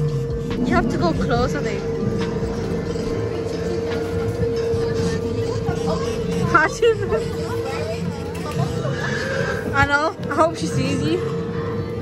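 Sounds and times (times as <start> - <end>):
ride car rumbling on track: 0.0 - 12.0.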